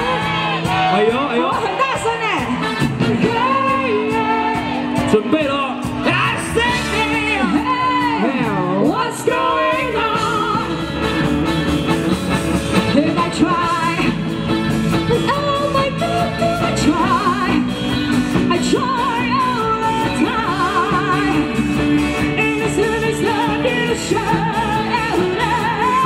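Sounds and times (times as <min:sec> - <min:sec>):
drums: 0:00.0 - 0:26.0
electric guitar: 0:00.0 - 0:26.0.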